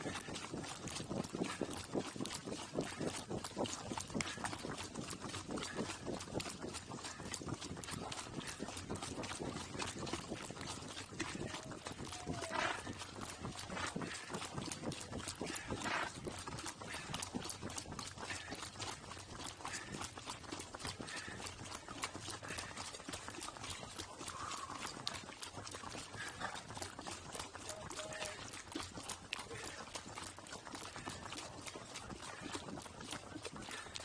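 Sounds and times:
hooves clip-clopping on pavement: 0.0 - 34.0.

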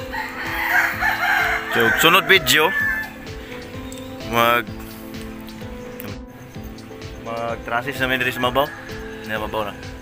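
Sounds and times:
rooster crowing: 0.0 - 3.3, 8.1 - 10.0.

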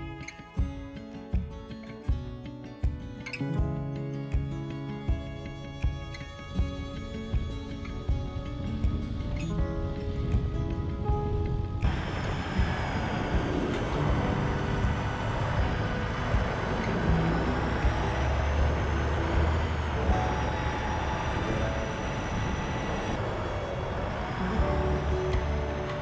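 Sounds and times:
soft background music: 0.0 - 26.0
motorcycle engine: 11.8 - 26.0.

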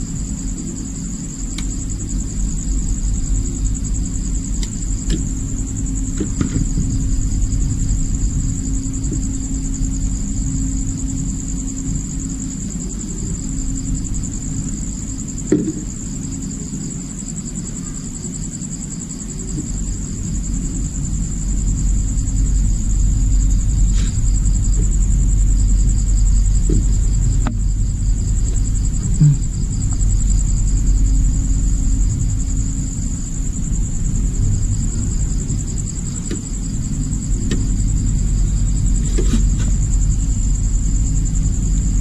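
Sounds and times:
crickets chirping: 0.0 - 42.0
low rumble: 1.8 - 16.0, 19.6 - 42.0.

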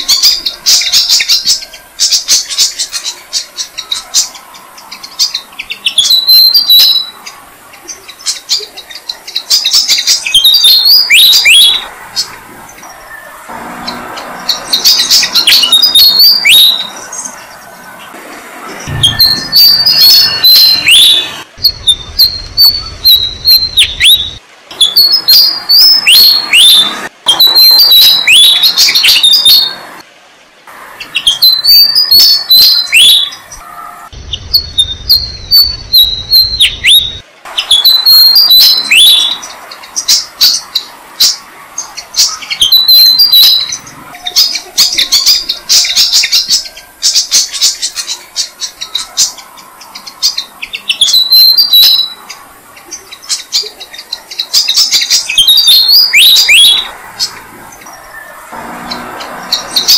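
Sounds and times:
bird singing high squeaky notes: 0.0 - 18.0, 18.7 - 29.8, 31.0 - 59.9
nestlings begging chirps: 0.0 - 30.0, 30.9 - 59.9.

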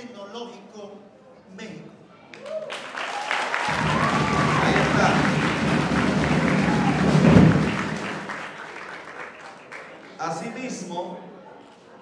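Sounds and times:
audience applauding: 2.4 - 10.2.

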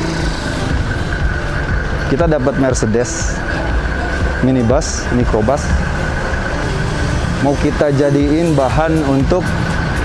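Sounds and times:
engine rumble with whine: 0.0 - 10.0.

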